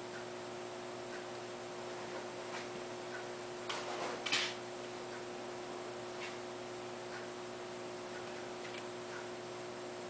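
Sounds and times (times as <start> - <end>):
electrical hum and hiss: 0.0 - 10.0.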